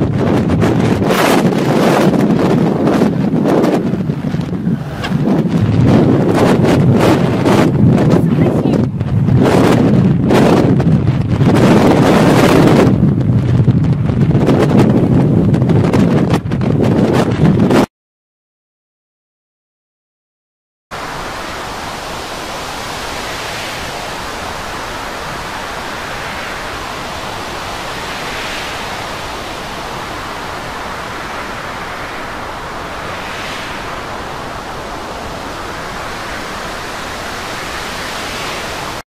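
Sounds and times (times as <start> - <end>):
heavy sea: 0.0 - 17.9, 20.9 - 39.0
storm wind: 0.0 - 17.9, 20.9 - 39.0.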